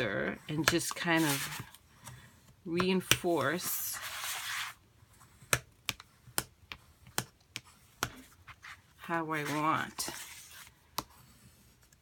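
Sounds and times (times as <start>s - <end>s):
bone folder scraping paper: 0.9s - 2.2s, 3.2s - 4.8s, 7.7s - 12.0s.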